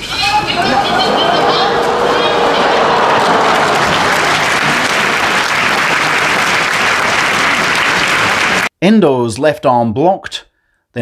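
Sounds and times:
crowd applauding: 0.2 - 8.7.

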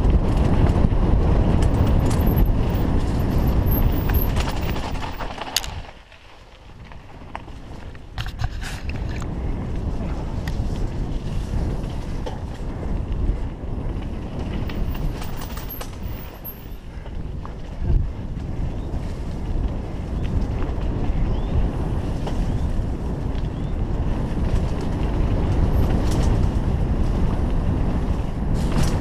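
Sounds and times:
wind buffeting microphone: 0.0 - 6.0, 6.6 - 29.0
tyres rumbling on dirt: 0.0 - 16.8
bike rattles and clicks: 0.0 - 29.0.

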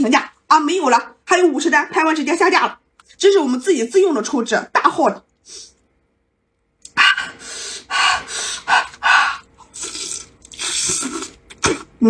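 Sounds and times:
breathing: 7.2 - 9.5
sucking and biting meat: 8.8 - 12.0.

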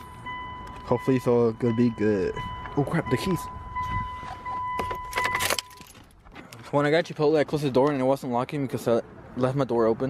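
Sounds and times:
high warning tone: 0.0 - 6.0
car keys jangling: 4.2 - 6.6.

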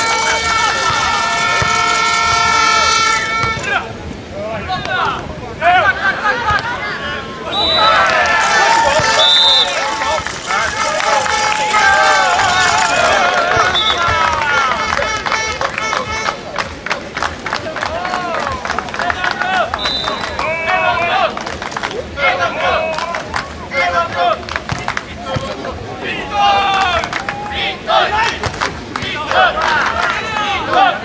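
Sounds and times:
crowd shouting and talking: 0.0 - 31.0
high whistle blasts: 7.5 - 8.1, 8.9 - 9.9, 13.5 - 14.2, 19.8 - 20.4
rapid clapping: 8.1 - 20.5, 21.3 - 22.0, 24.4 - 25.6, 26.7 - 27.4, 28.2 - 30.2.

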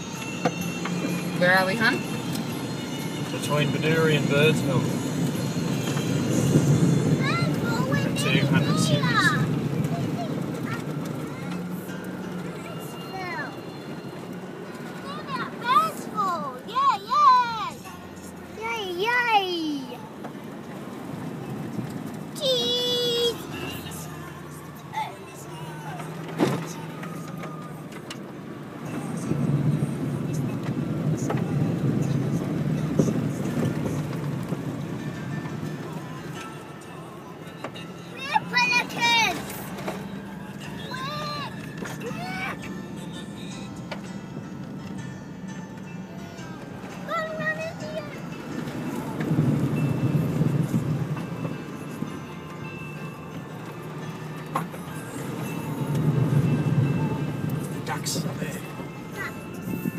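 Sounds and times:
vehicle rumbling on dirt road: 0.0 - 59.9.

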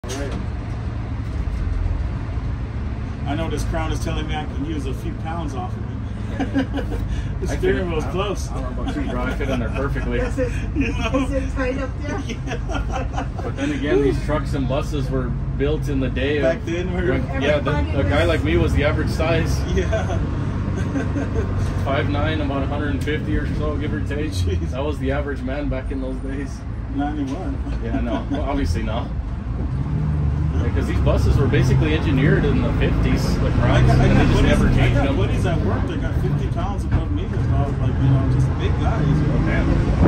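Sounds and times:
diesel engine rumbling: 0.0 - 40.0.

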